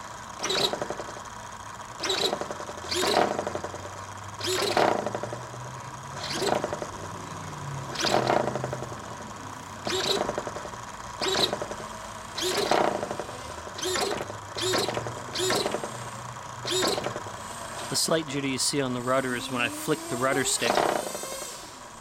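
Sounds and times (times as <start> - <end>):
servo buzzing whine: 0.0 - 22.0.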